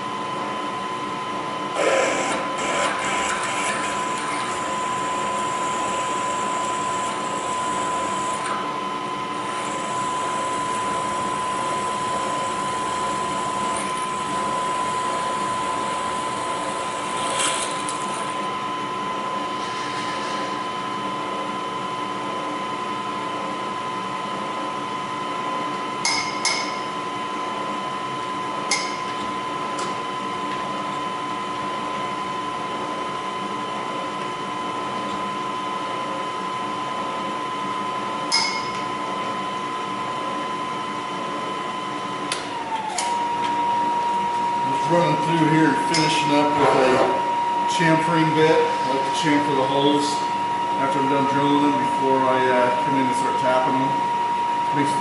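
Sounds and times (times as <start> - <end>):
milling machine spindle whine: 0.0 - 55.0.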